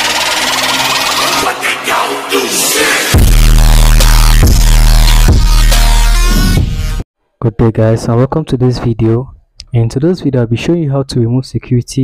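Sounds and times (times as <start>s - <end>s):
electronic intro music: 0.0s - 7.0s.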